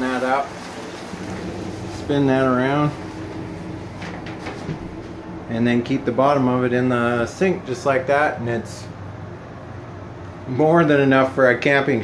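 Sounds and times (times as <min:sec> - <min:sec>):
shower curtain rolling scrapes: 0:00.0 - 0:05.3
steady low hum: 0:00.0 - 0:12.0.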